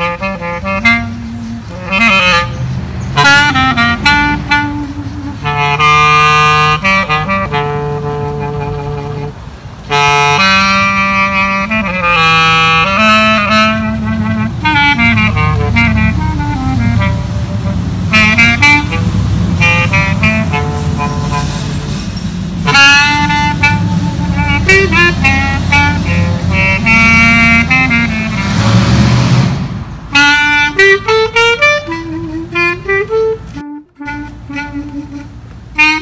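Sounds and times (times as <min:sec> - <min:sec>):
clarinet playing slow jazz: 0:00.0 - 0:28.8, 0:30.1 - 0:36.0.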